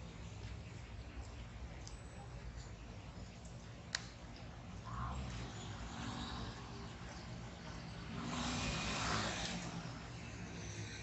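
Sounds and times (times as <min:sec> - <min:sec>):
low hum of traffic: 0:00.0 - 0:11.0.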